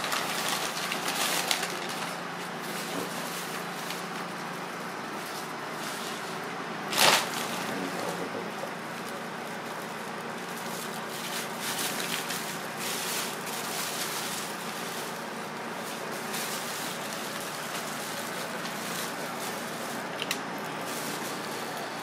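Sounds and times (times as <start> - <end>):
plastic bag and newspaper crinkling: 0.0 - 22.0.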